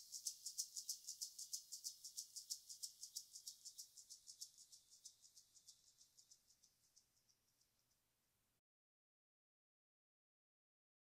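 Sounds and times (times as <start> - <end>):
rapid high-pitched percussion ticking: 0.0 - 7.7.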